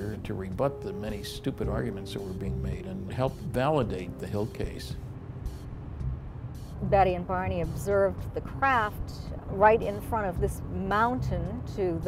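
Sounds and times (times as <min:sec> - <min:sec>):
car road rumble from inside: 0:00.2 - 0:12.0.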